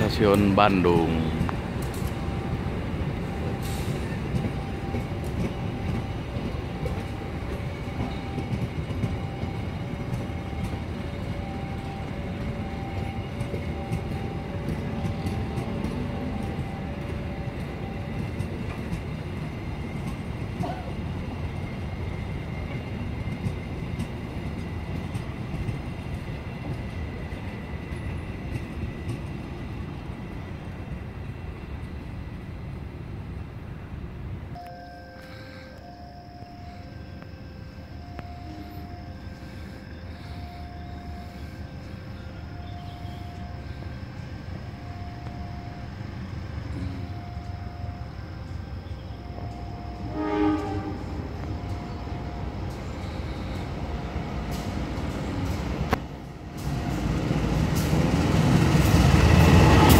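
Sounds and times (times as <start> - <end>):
freight train wagons rolling: 0.0 - 59.9
faint steady tone: 34.5 - 50.6.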